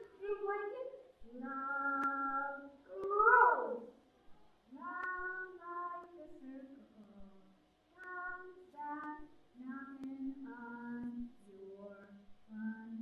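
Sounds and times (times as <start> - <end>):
person singing unaccompanied: 0.0 - 4.0, 4.7 - 13.0.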